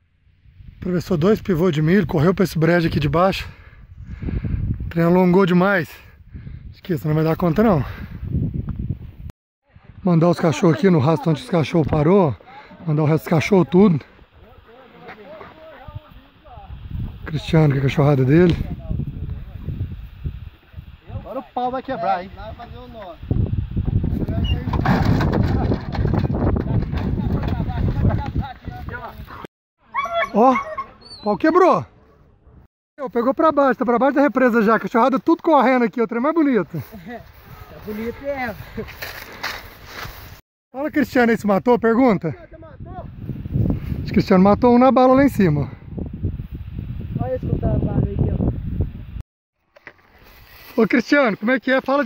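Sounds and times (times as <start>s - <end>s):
man speaking: 10.0s - 16.7s
footsteps through dry grass: 36.6s - 40.4s, 49.6s - 52.0s.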